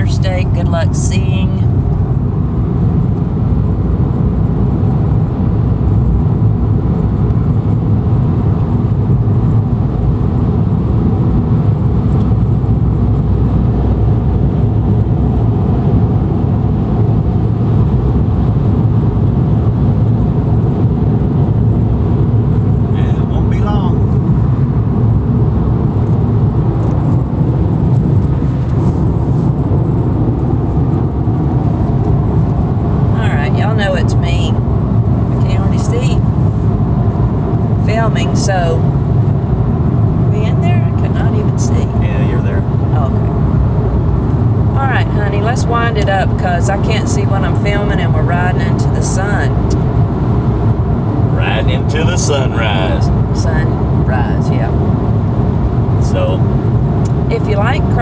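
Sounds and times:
car road and engine noise: 0.0 - 58.0.

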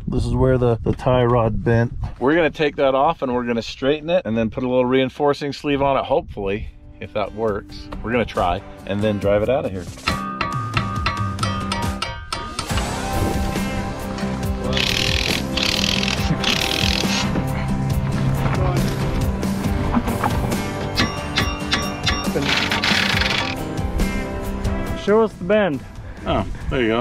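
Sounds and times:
background music: 6.8 - 27.0
harsh tool noise: 12.5 - 17.5, 20.0 - 23.7
ratchet clicking: 14.7 - 17.3, 21.0 - 23.6.

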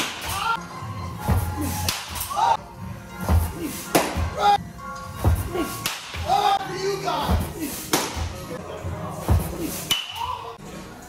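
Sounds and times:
person shouting: 6.2 - 6.8.

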